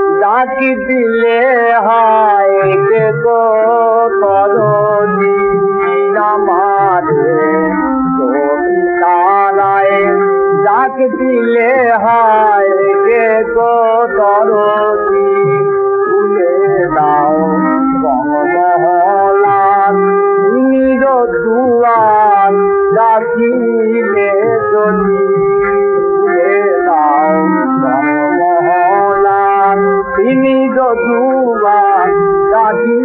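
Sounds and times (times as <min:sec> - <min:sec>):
old gramophone song with drone: 0:00.0 - 0:33.0.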